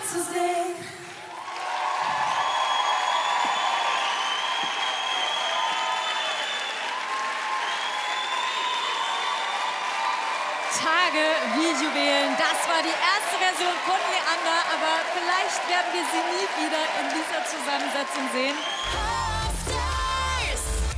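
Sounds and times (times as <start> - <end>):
audience applause: 1.0 - 20.8
high-pitched whoops: 1.4 - 10.3.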